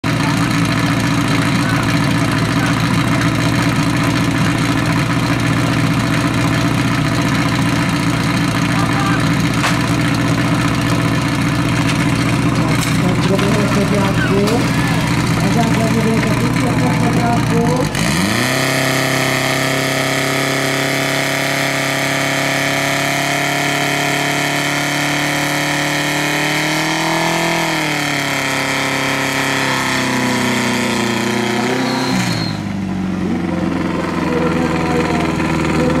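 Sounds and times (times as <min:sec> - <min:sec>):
fire pump engine revving: 0:00.0 - 0:36.0.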